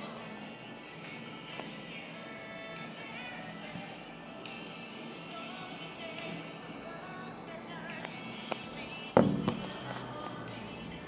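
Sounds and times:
background music: 0.0 - 11.0
phone knocking on tabletop: 9.2 - 10.0.

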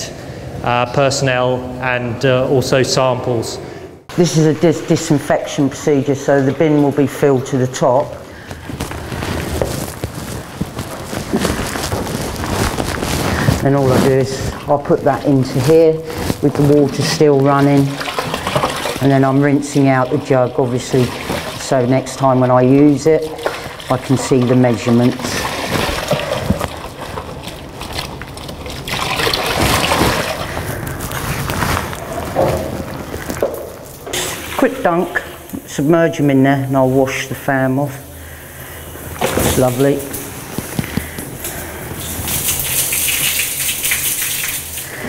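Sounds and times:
water splashing and sloshing: 4.8 - 45.0
water running from a hose: 13.0 - 31.0, 41.4 - 45.0.

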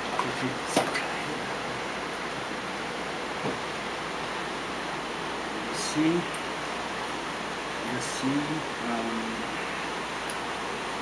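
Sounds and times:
room noise hiss: 0.0 - 11.0.

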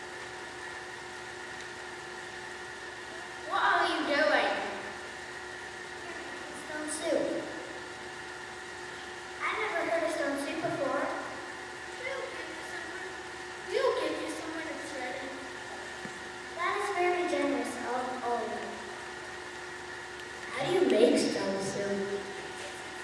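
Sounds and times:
steady hum: 0.0 - 23.0
children speaking lines: 3.1 - 4.8, 6.0 - 7.7, 9.4 - 15.8, 16.5 - 18.9, 20.5 - 23.0.

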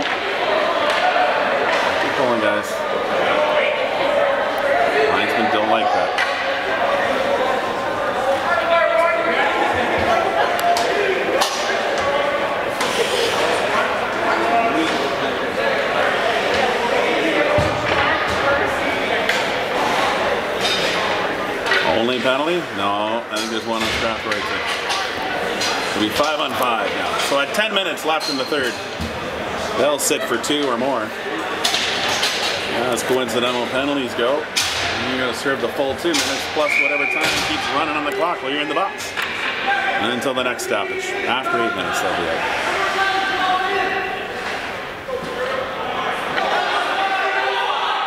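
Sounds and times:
voices talking and calling out: 0.0 - 48.0.

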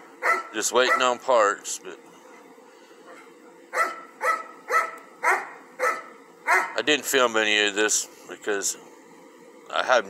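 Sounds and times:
dog barking: 0.2 - 1.2, 3.1 - 6.8.

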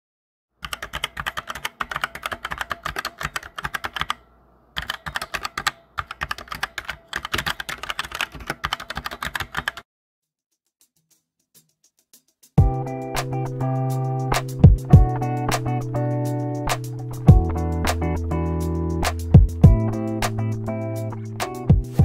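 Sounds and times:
computer keyboard typing: 0.6 - 9.8.

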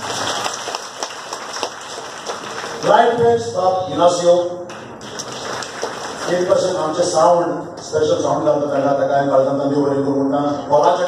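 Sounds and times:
audience applauding: 0.0 - 3.0, 4.7 - 7.0.

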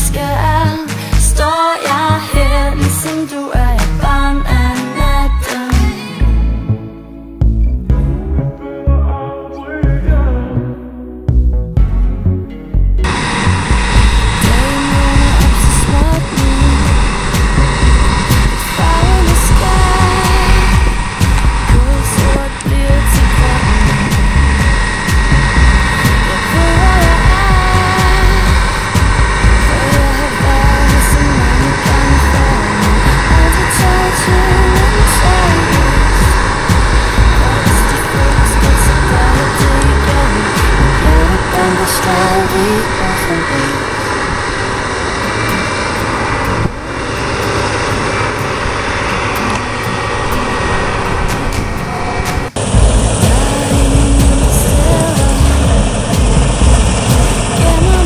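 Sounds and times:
combine harvester engine drone: 0.0 - 6.8, 11.5 - 58.0.

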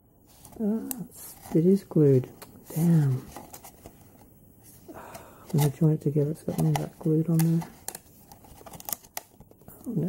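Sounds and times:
plastic packaging crinkling: 5.5 - 10.0.

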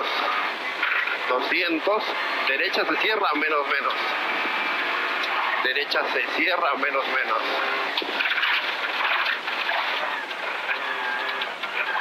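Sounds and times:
car engine running hard: 0.0 - 12.0
tyre and gravel noise: 7.6 - 12.0.

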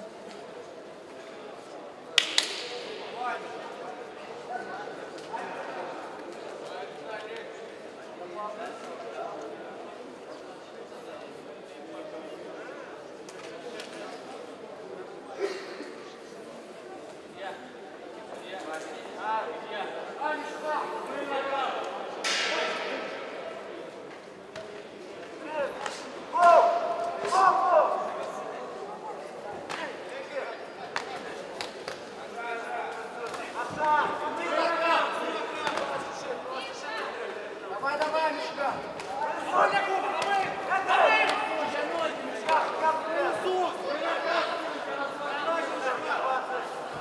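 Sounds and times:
sharp hand claps: 2.2 - 2.9
loud shouts: 26.3 - 28.2, 39.2 - 44.6.

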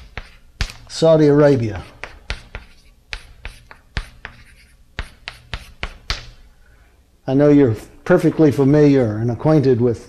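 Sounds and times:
chalk tapping on chalkboard: 0.0 - 1.0, 1.6 - 6.4
chalk scratching on chalkboard: 0.0 - 6.4.

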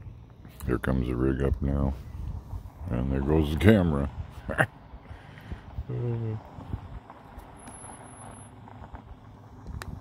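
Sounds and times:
van engine rumbling: 0.0 - 10.0
man laughing: 4.4 - 4.8.

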